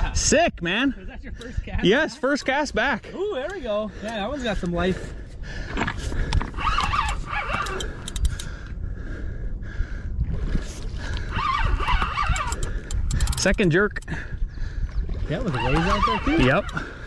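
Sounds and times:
wind on microphone: 0:00.0 - 0:17.0
fishing reel cranking: 0:06.5 - 0:08.5, 0:11.3 - 0:14.1, 0:15.6 - 0:17.0.

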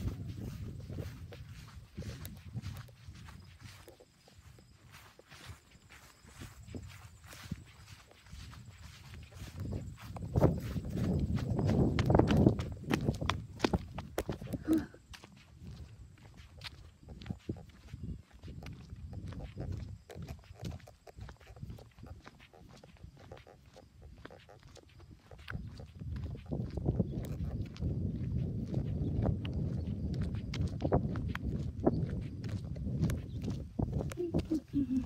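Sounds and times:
footsteps on asphalt: 0:00.0 - 0:35.0.

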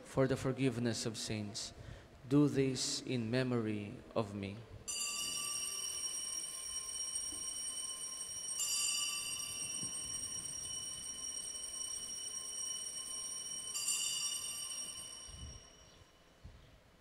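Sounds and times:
small high-pitched bells ringing: 0:04.9 - 0:16.4.

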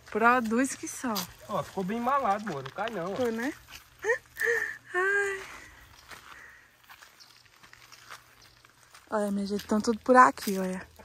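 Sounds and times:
footsteps on dry dirt and grass: 0:00.0 - 0:11.0.

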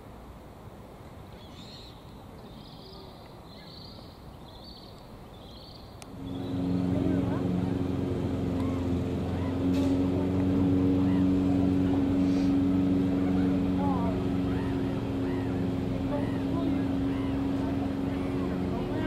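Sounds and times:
low motor hum: 0:06.0 - 0:19.0.

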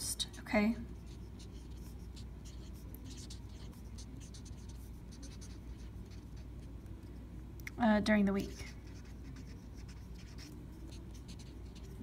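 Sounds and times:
faint steady low hum: 0:00.0 - 0:12.0
marker writing on paper: 0:01.0 - 0:06.7, 0:08.4 - 0:12.0.

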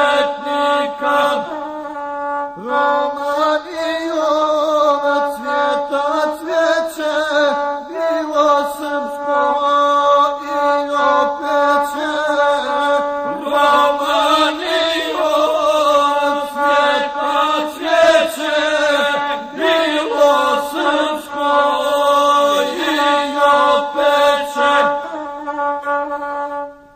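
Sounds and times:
person chanting: 0:00.0 - 0:26.9
bowed single-string fiddle: 0:13.0 - 0:22.0.

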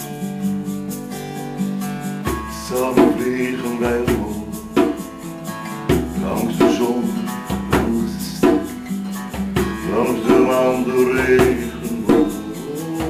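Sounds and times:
acoustic guitar strumming: 0:00.0 - 0:13.0.

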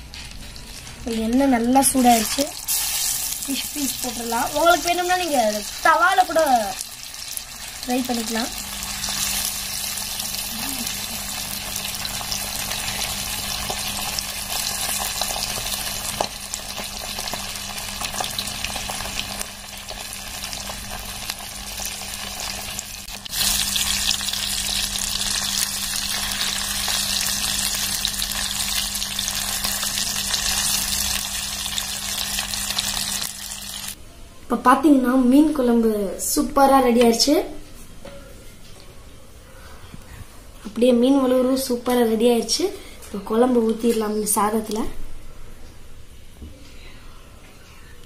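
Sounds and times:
fish sizzling in hot oil: 0:01.0 - 0:34.0.

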